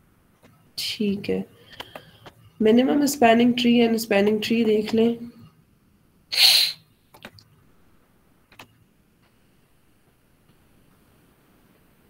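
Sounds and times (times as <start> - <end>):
person sneezing: 6.3 - 6.8.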